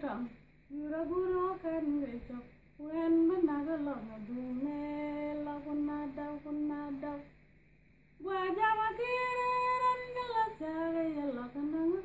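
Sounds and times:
woman singing unaccompanied: 0:00.0 - 0:07.4, 0:08.2 - 0:12.0.

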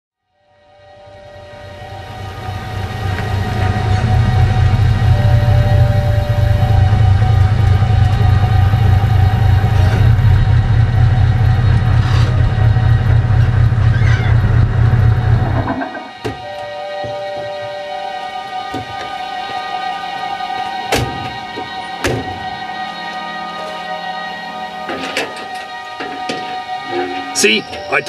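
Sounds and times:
truck engine idling: 0:01.1 - 0:17.0.

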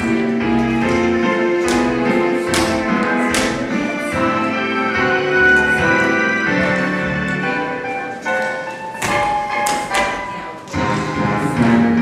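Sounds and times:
tap shoes on stage floor: 0:00.0 - 0:03.8, 0:08.3 - 0:10.8.

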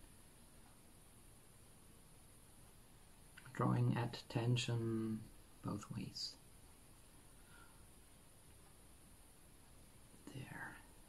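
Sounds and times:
soft whispered vocal sound: 0:03.4 - 0:06.5, 0:10.1 - 0:11.0.

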